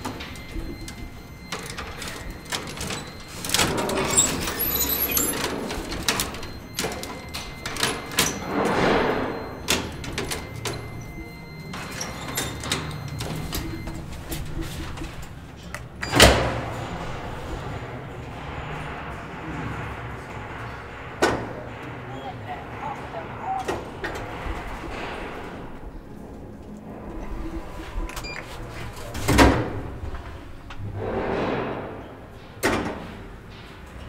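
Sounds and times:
elevator clunking: 0.0s - 34.0s
elevator hum with rattling rumble: 0.0s - 34.0s.

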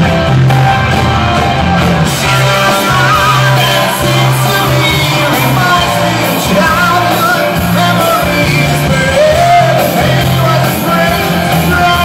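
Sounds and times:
electric guitar: 0.0s - 12.0s
live pop-rock band playing: 0.0s - 12.0s
lead vocal singing: 2.1s - 12.0s.

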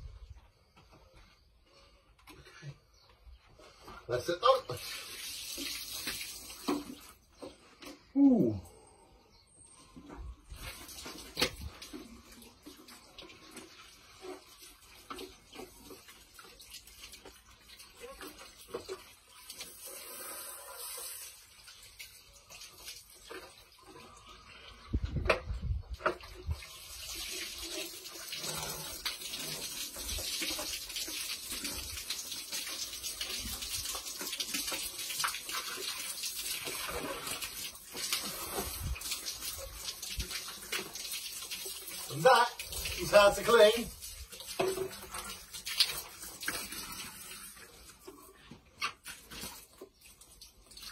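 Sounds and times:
water from hose running: 3.7s - 8.8s, 10.1s - 50.9s.

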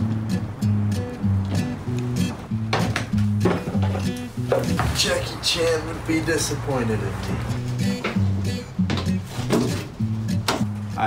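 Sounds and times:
bass line: 0.0s - 11.0s.

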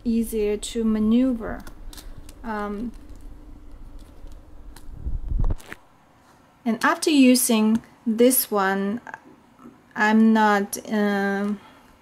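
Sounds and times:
low rumble of handling: 0.0s - 6.2s.

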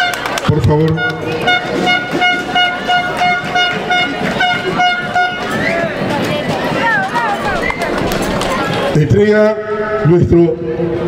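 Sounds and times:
horn tooting short notes: 0.9s - 5.9s.

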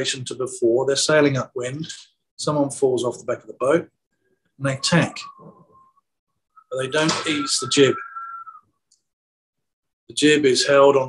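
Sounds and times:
man speaking: 0.0s - 4.0s, 4.6s - 5.6s, 6.7s - 8.3s
faint whistle-like high tone: 4.6s - 8.8s.

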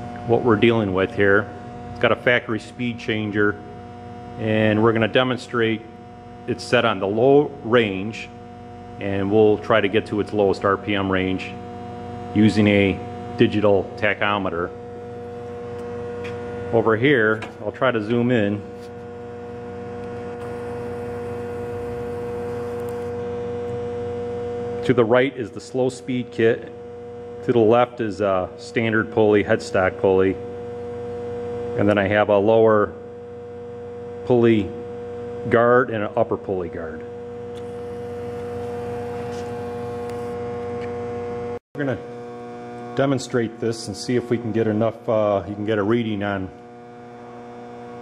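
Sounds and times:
steady electrical hum: 0.0s - 48.0s.

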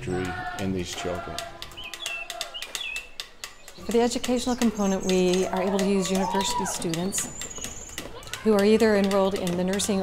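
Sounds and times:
birds chirping: 0.0s - 10.0s
sharp clicks: 0.4s - 10.0s.

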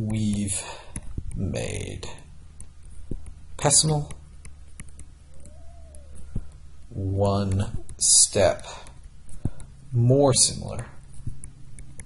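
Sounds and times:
low hum: 0.0s - 12.0s
rising and falling tone: 5.2s - 6.6s.

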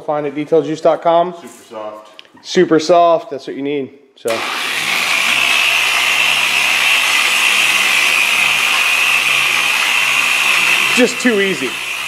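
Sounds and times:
electric polisher running: 4.3s - 12.0s.

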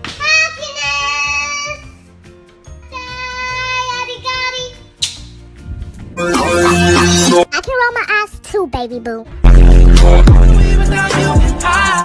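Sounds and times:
backing music: 0.0s - 8.5s, 9.3s - 12.0s
child singing: 0.2s - 2.0s, 2.9s - 4.8s.

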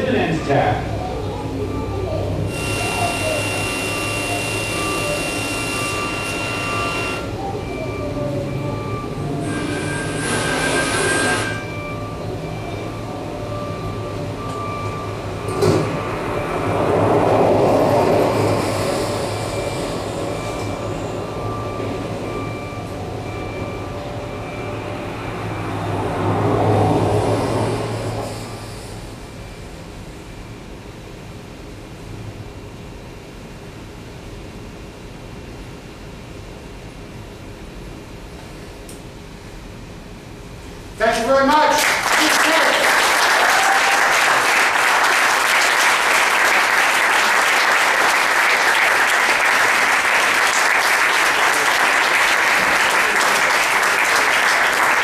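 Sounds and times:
dense electronic noise: 0.0s - 55.0s
faint pulsing beep tones: 0.3s - 16.8s, 19.1s - 26.0s.

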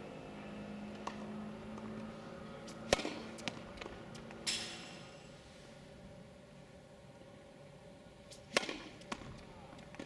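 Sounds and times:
racket striking tennis ball: 2.6s - 5.1s, 8.3s - 10.0s.

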